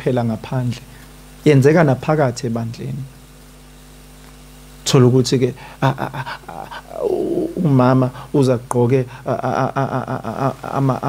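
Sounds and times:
electrical mains hum: 0.0 - 11.0
man speaking: 1.5 - 3.1, 4.9 - 11.0.

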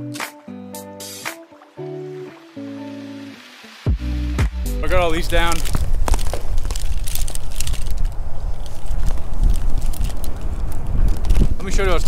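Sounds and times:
wind buffeting microphone: 4.9 - 12.0
small clicks and crackles: 5.2 - 12.0.

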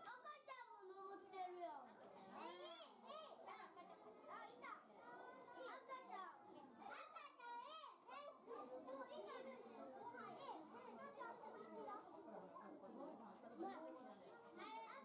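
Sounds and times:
children chattering and calling out: 0.0 - 15.0.

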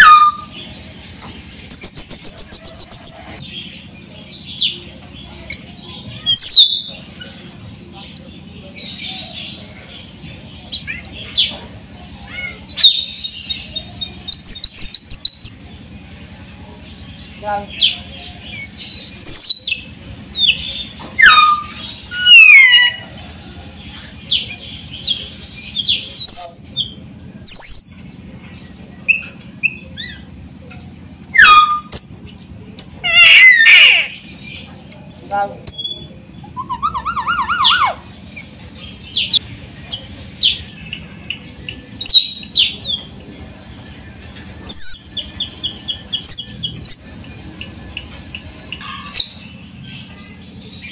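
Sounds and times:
harsh bird chatter: 0.0 - 50.9
steady low hum: 0.0 - 50.9
myna bird calling: 1.7 - 4.8, 17.6 - 23.2, 29.0 - 43.3.

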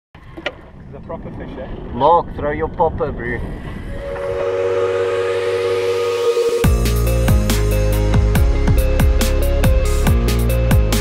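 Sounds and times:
rising synth sweep: 3.9 - 8.4
held synth chord: 3.9 - 8.8.

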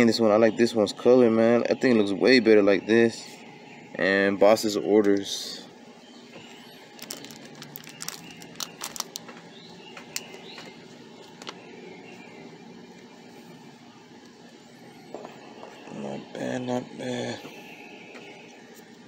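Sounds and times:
outdoor background noise: 0.0 - 19.0.

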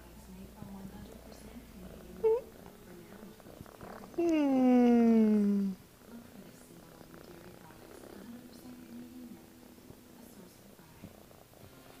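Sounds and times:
kitten purring: 0.7 - 12.0.

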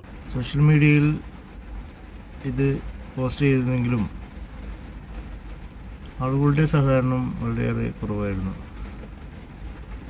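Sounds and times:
van engine running: 0.0 - 10.0.

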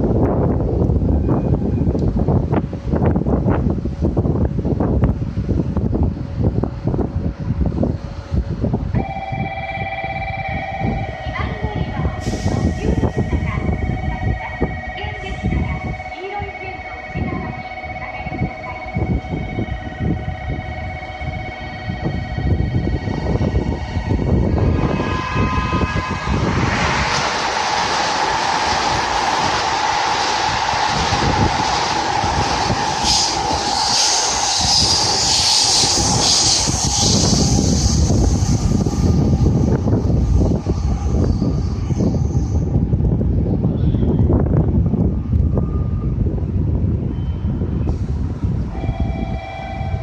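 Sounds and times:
train passing at speed: 0.0 - 50.0
wind buffeting microphone: 0.0 - 50.0
electronic warning bell ringing: 9.0 - 24.5, 48.8 - 50.0.

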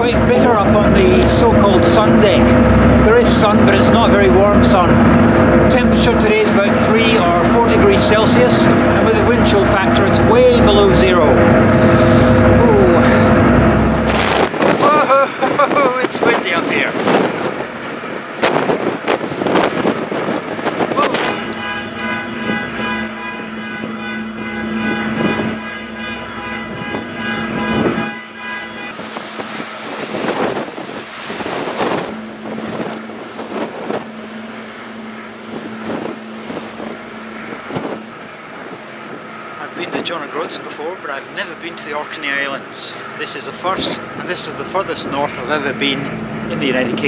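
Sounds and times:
ferry engines droning: 0.0 - 47.0
steady higher tones: 0.0 - 47.0
water rushing along hull: 0.0 - 47.0
wind buffeting microphone: 0.0 - 47.0.

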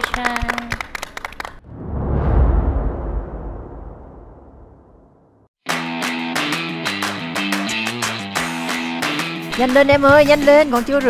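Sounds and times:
clapping: 0.0 - 1.6, 6.4 - 9.5
deep rumbling boom with whoosh: 1.6 - 5.5.

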